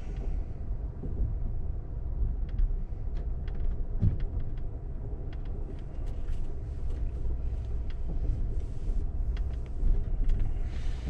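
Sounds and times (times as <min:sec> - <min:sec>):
train coach rumbling on track: 0:00.0 - 0:11.0
faint light ticks: 0:02.4 - 0:10.5.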